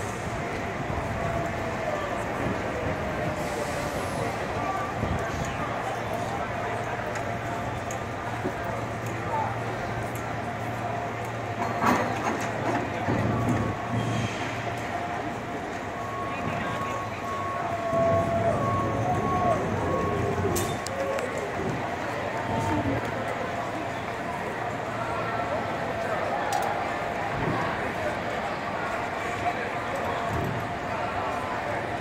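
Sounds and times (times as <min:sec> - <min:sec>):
cable car rumbling: 0:00.0 - 0:32.0
people's voices: 0:00.0 - 0:32.0.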